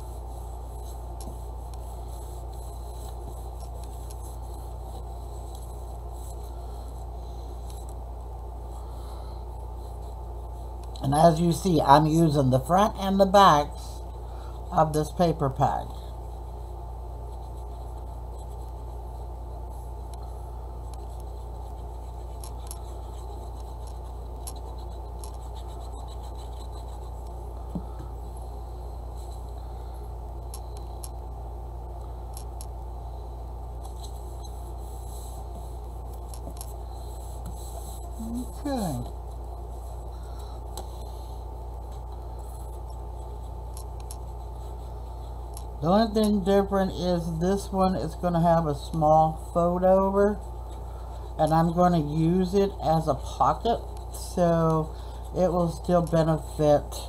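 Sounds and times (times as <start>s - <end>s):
paper scratching and rubbing: 0.0s - 7.0s, 17.2s - 20.1s, 21.0s - 27.4s, 33.8s - 40.1s
low background hum: 0.0s - 57.0s.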